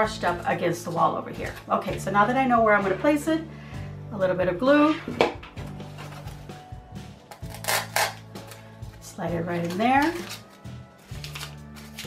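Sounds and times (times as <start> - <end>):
background music with sustained notes: 0.0 - 12.0.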